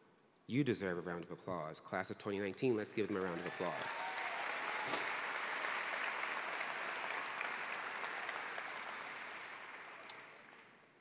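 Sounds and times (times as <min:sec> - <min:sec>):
large audience applauding: 0:02.3 - 0:10.9.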